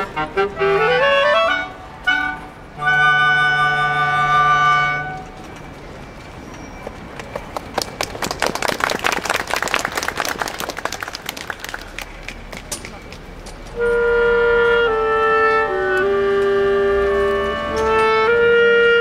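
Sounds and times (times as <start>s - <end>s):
flute and clarinet ensemble: 0.0s - 5.4s, 13.7s - 19.0s
hand clapping: 7.5s - 13.3s.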